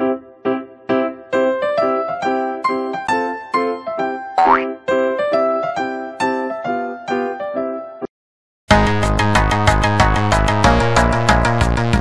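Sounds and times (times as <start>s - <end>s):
bouncy keyboard music: 0.1s - 8.0s
rising cartoon boing: 4.4s - 4.8s.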